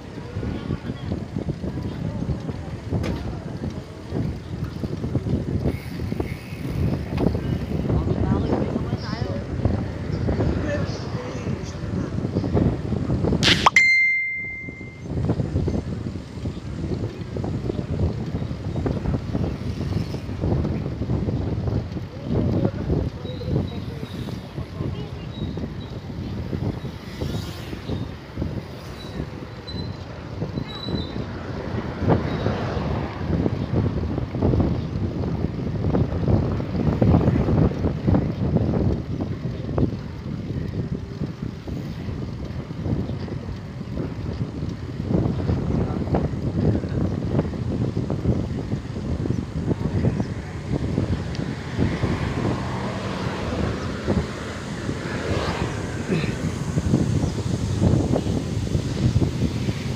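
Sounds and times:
wind buffeting microphone: 0.0 - 13.5, 14.6 - 59.9
bicycle tyre and road noise: 0.0 - 59.9.

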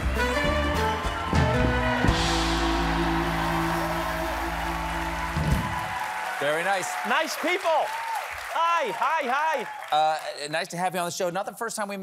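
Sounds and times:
band playing held chord: 1.5 - 5.9.

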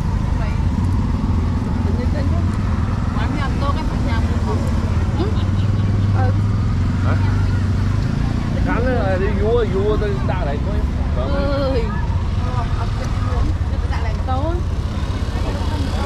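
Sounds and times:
people talking: 0.0 - 0.7, 1.8 - 16.0
traffic engine hum: 0.0 - 16.0.

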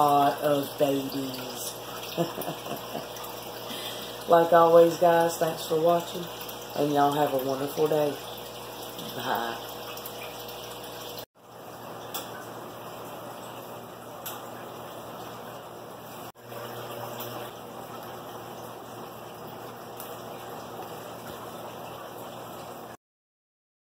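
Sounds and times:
water running from aquarium filters: 0.0 - 23.0.

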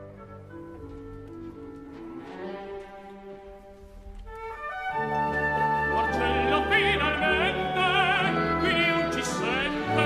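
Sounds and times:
orchestra playing softly: 0.0 - 10.0.

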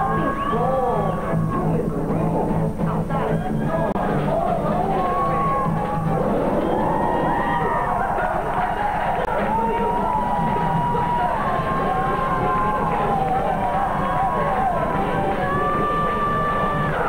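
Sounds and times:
crowd cheering and shouting: 0.0 - 1.7, 3.2 - 17.0
backing music: 0.0 - 17.0.

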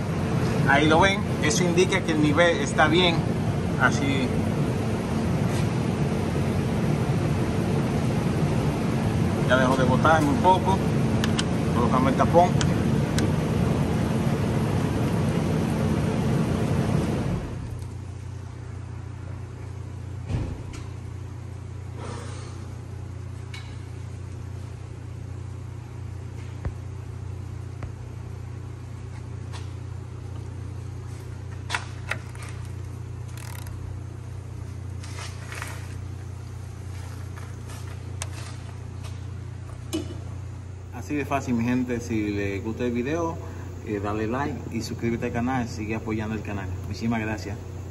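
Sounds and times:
workshop background hum: 0.0 - 47.9.

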